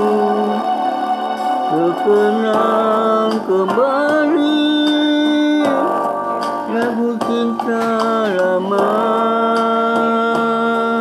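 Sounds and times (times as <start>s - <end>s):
guitar accompaniment: 0.0s - 11.0s
person singing pop ballad: 0.0s - 11.0s.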